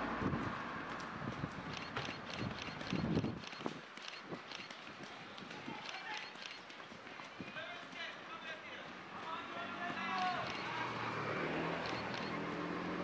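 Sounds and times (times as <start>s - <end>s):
runners' footfalls on grass: 6.6s - 10.1s.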